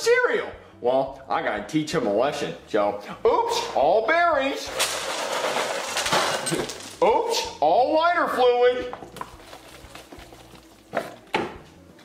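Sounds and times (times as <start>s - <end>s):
handling of kitchen items: 4.6s - 7.5s, 8.8s - 12.0s.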